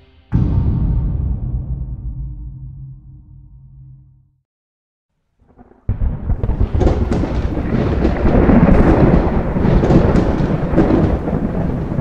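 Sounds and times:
crackles: 5.3 - 12.0
deep thunder-like rumble: 5.4 - 12.0.

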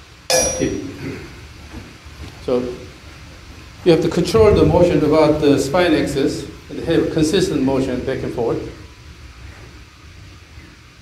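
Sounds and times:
sharp metallic clang: 0.3 - 1.2.

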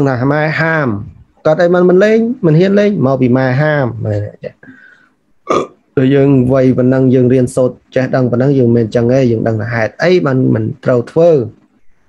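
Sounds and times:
man lecturing: 0.0 - 4.7, 6.0 - 11.9
noisy throat sound: 5.4 - 5.8.

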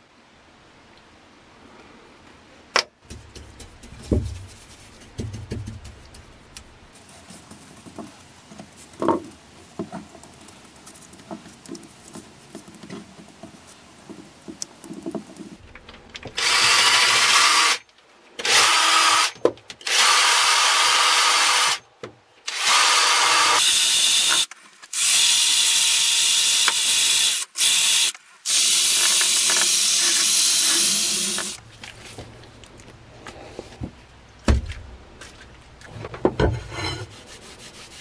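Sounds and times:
drill wheel grinding steel blade: 16.4 - 17.8, 22.5 - 31.6.

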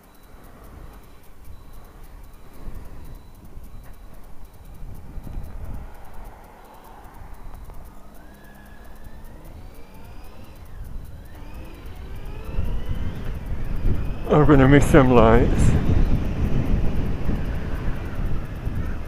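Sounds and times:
motorcycle engine accelerating: 0.0 - 19.0
road and wind rumble: 0.0 - 19.0.

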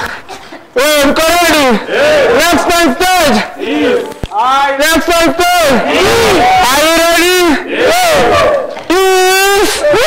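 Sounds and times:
man shouting through microphone: 0.8 - 10.0.

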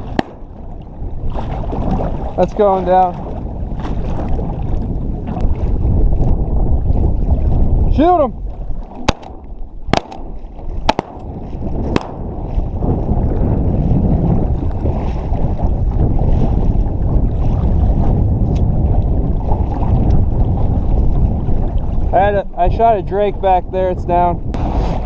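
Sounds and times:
shotgun shots: 0.0 - 0.5, 9.0 - 12.3
water lapping around boat: 0.0 - 25.0
wind rushing: 0.0 - 25.0.

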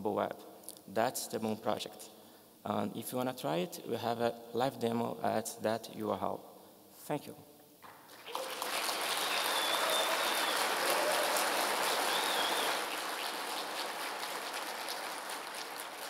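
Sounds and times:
audience applauding: 7.8 - 16.0.

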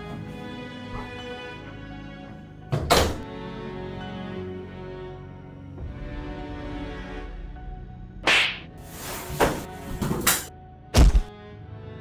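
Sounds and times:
background music: 0.0 - 12.0
whacks and thuds: 8.2 - 8.7, 10.1 - 11.3.

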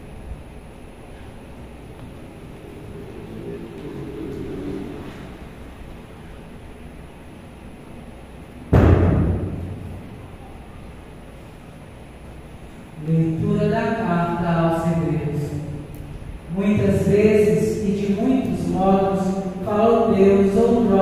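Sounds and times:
loud thump on microphone: 8.7 - 10.0.

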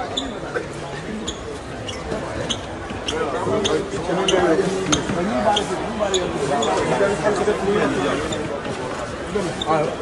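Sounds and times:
people talking in a hall: 0.0 - 10.0.

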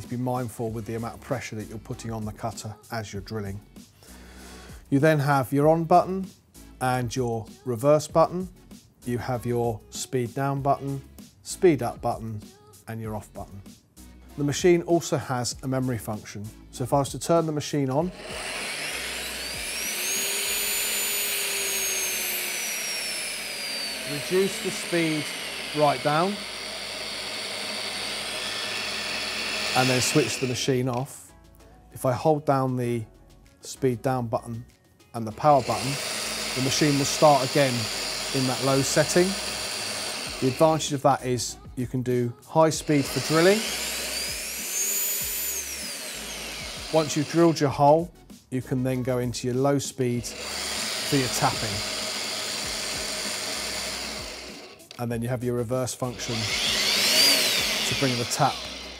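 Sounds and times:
drill motor whine: 18.0 - 31.1, 35.3 - 41.0, 42.8 - 47.8, 50.2 - 54.9, 56.1 - 58.9.

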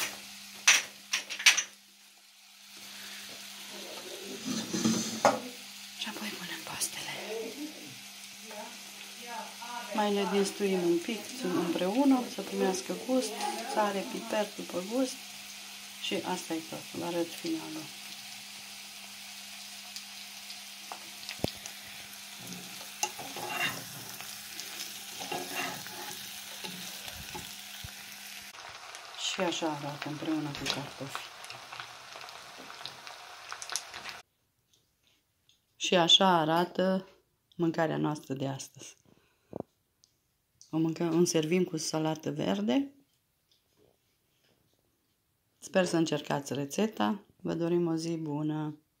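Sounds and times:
potatoes sizzling in oil: 0.0 - 34.2
sharp crackles of frying: 0.0 - 34.3.

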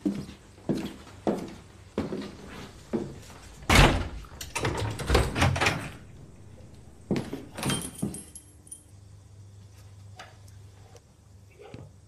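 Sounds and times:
door shutting with thud: 3.6 - 6.1
keys jingling: 7.1 - 9.0.

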